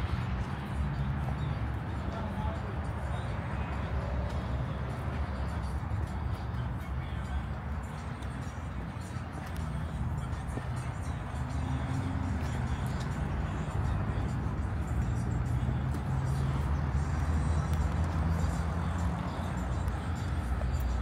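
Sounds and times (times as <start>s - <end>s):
city traffic rumble: 0.0s - 21.0s.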